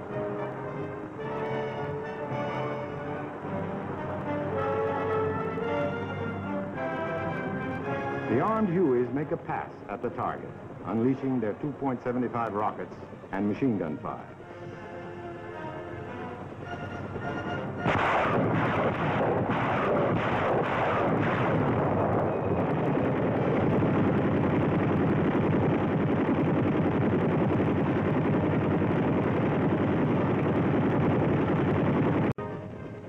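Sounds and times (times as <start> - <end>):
machine-gun fire: 17.9 - 22.1.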